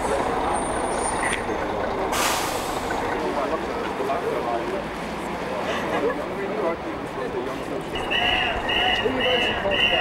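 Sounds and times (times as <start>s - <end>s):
bus engine running: 0.0s - 10.0s
street noise: 0.0s - 10.0s.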